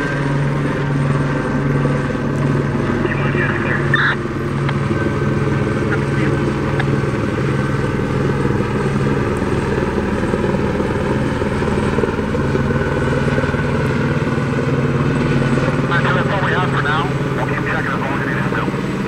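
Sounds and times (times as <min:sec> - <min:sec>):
helicopter rotor and engine: 0:00.0 - 0:19.0.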